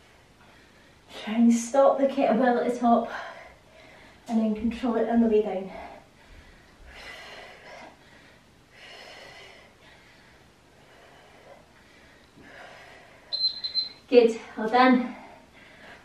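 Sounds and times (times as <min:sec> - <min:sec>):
high-pitched beep: 0:13.3 - 0:14.0.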